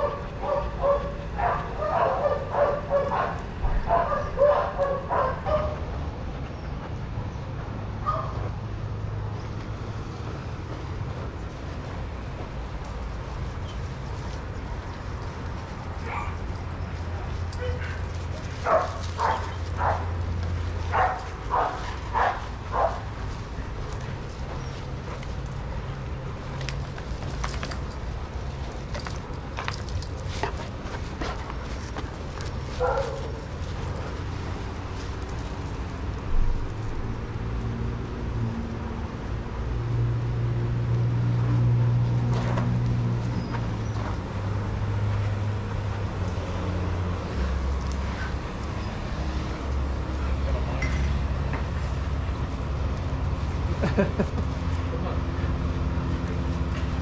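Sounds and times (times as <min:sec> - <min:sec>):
dogs barking: 0:00.0 - 0:06.7, 0:08.0 - 0:08.5, 0:15.9 - 0:26.0, 0:28.9 - 0:34.7.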